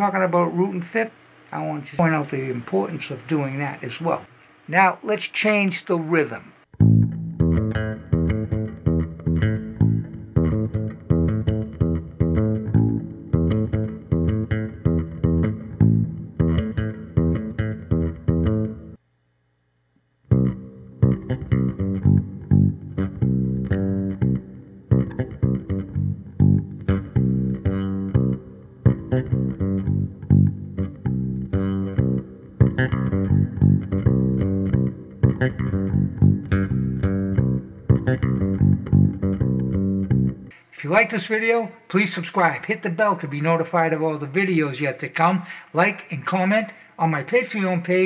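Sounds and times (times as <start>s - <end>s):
electric bass played with fingers: 6.7s - 19.0s, 20.3s - 40.6s.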